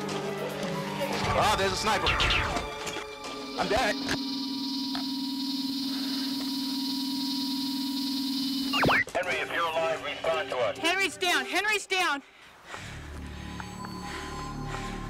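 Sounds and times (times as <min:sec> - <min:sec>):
electronic drone with buzz: 0:03.5 - 0:09.1.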